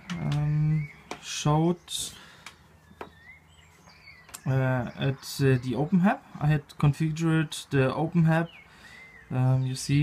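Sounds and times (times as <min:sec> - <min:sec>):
faint rising chirp: 0:00.0 - 0:06.4.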